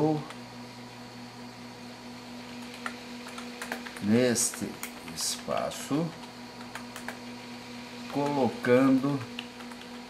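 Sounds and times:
low electrical hum: 0:00.0 - 0:10.0
laptop clicks: 0:02.4 - 0:07.2, 0:09.3 - 0:10.0.

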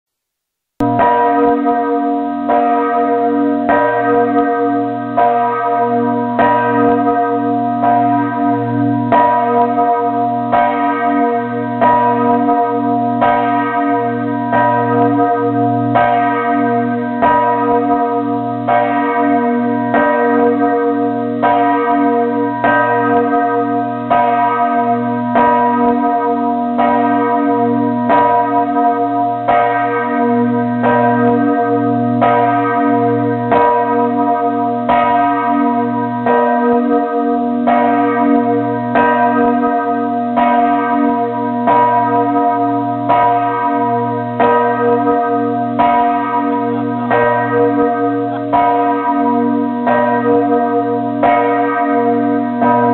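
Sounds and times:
church bells ringing: 0:00.8 - 0:52.9.

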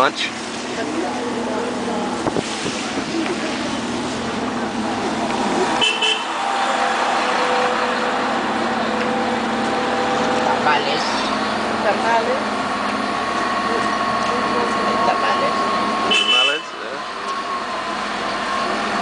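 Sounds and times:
car road and engine noise: 0:00.0 - 0:19.0
car horn: 0:05.7 - 0:06.6, 0:15.9 - 0:17.0.

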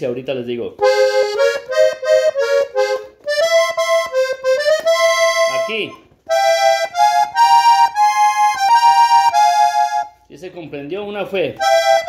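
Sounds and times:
accordion melody: 0:00.7 - 0:10.4, 0:11.6 - 0:12.0
soft accordion bass notes: 0:00.8 - 0:10.3, 0:11.6 - 0:12.0.

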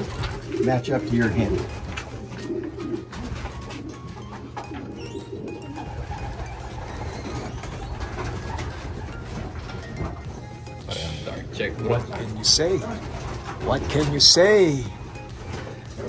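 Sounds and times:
pigeons cooing: 0:00.0 - 0:16.0.

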